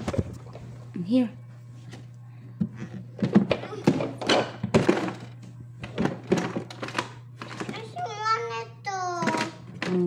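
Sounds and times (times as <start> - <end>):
plastic toys clattering in box: 9.2 - 10.0.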